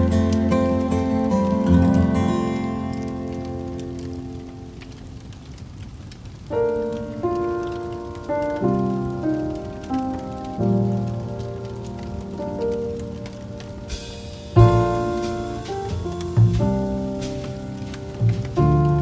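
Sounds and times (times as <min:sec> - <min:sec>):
soft instrumental music: 0:00.0 - 0:05.0, 0:06.5 - 0:19.0
wood fire crackling and popping: 0:00.0 - 0:19.0.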